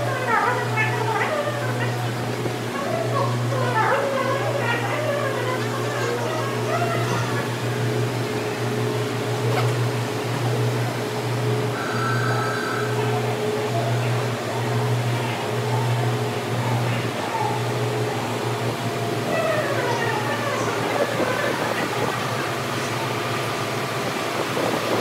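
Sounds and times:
faint voices: 0.0s - 25.0s
passenger coaches humming: 0.0s - 25.0s.

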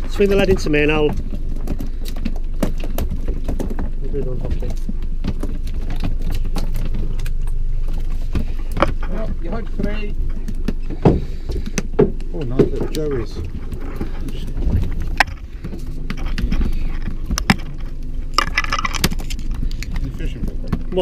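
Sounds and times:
voices talking: 0.0s - 1.2s, 12.2s - 17.2s
boat engine idling: 0.0s - 21.0s.

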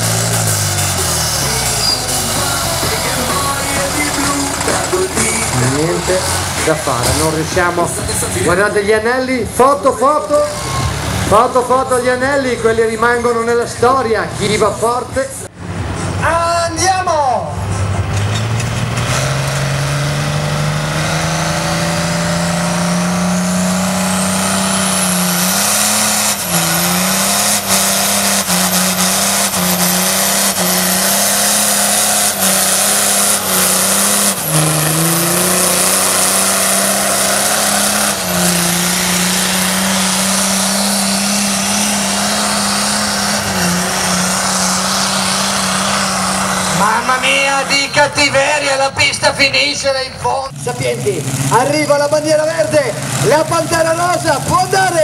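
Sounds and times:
diesel tractor engine revving: 0.0s - 16.3s, 17.5s - 55.0s
turbo whistle: 1.7s - 2.3s.

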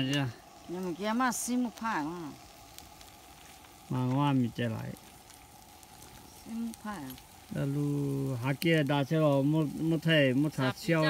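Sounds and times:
campfire crackling: 0.0s - 11.0s.

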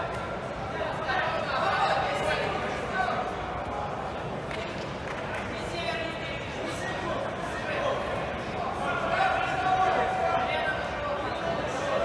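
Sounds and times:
people calling out in echoing hall: 5.6s - 12.0s.

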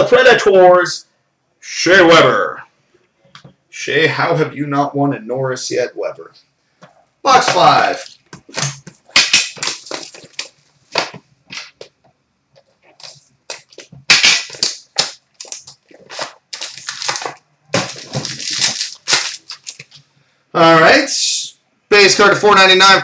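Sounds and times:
plastic wrap crinkling and tearing: 7.9s - 11.7s, 12.7s - 20.0s.

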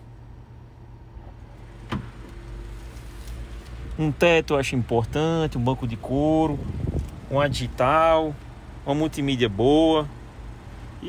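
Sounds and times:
low hum in car cabin: 0.0s - 11.0s.

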